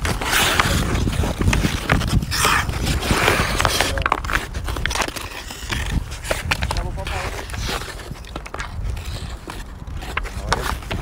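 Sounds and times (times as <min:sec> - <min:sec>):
skate blades scraping ice: 0:00.0 - 0:11.0
sticks and pucks clicking on ice: 0:00.0 - 0:11.0.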